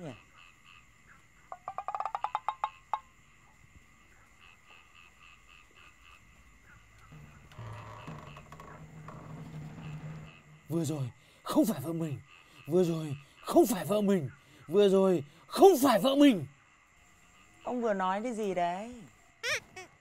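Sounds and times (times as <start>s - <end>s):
frog croaking: 0.0s - 20.0s
insects chirping: 0.0s - 20.0s
low grating sound: 7.1s - 10.9s.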